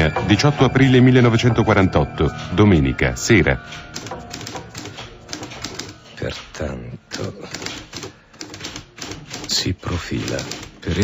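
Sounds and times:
typewriter keys clacking: 0:03.6 - 0:11.0.

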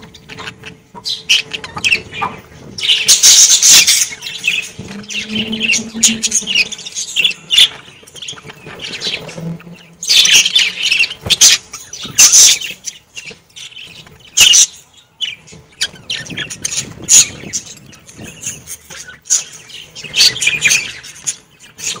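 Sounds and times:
budgerigars chirping and chattering: 0:00.0 - 0:22.0.

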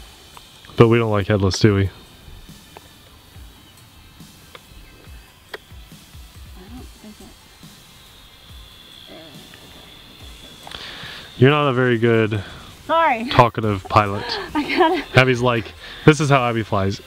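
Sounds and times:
toy quadcopter motors whining: 0:00.0 - 0:17.0.

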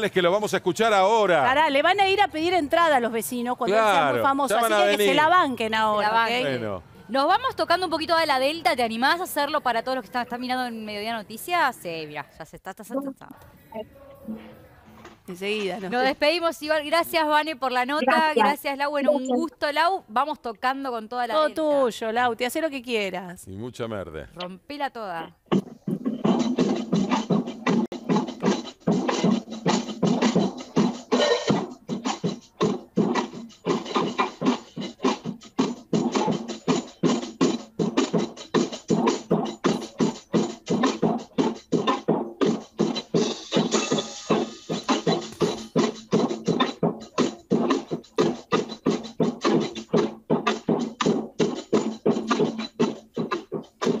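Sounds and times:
child playing drum kit: 0:25.4 - 0:54.0.

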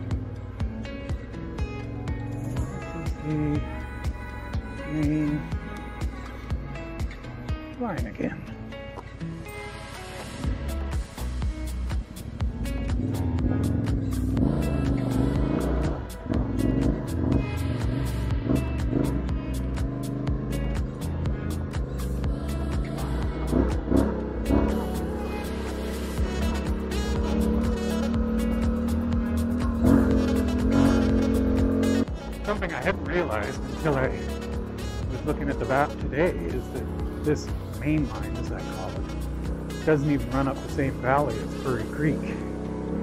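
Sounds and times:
motorcycle engine revving: 0:00.0 - 0:07.6, 0:10.4 - 0:43.0
background music: 0:00.0 - 0:43.0.

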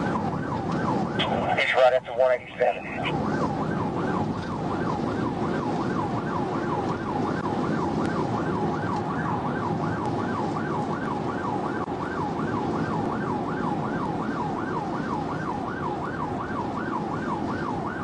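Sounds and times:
police siren yelping: 0:00.0 - 0:18.0
road and engine noise: 0:00.0 - 0:18.0.

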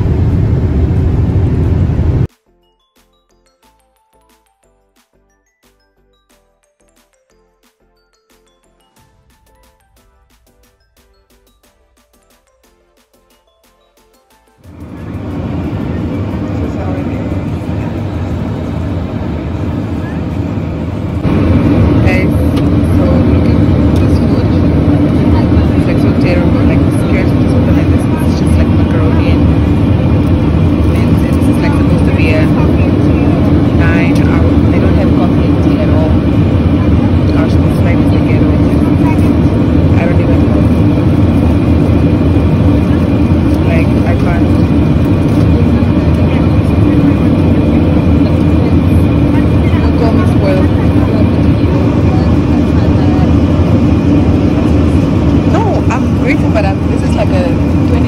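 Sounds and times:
jet engines in cabin: 0:00.0 - 0:02.3, 0:14.4 - 0:58.0
faint passenger voices: 0:14.7 - 0:58.0.

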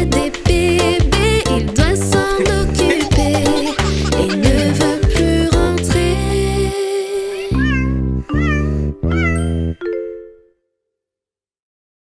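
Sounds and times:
children's song: 0:00.0 - 0:07.7
cartoon cat meows: 0:07.4 - 0:09.6.

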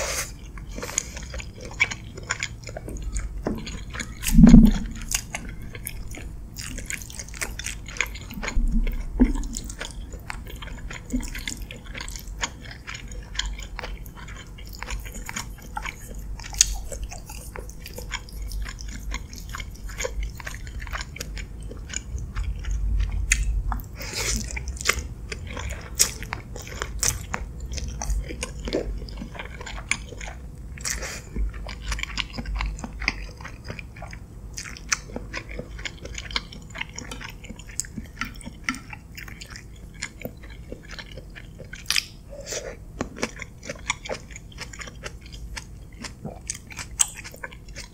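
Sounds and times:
chewing with wet mouth clicks: 0:00.2 - 0:47.9.

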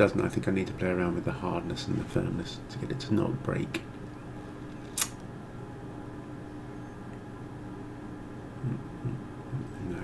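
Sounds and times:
steady low hum: 0:00.0 - 0:10.0
sharp click: 0:04.9 - 0:05.2.

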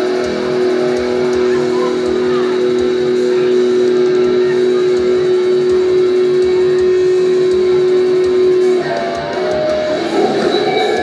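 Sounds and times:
busier guitar playing: 0:00.0 - 0:11.0
electric guitar sustained note: 0:00.0 - 0:11.0
steady low beat: 0:00.0 - 0:11.0.

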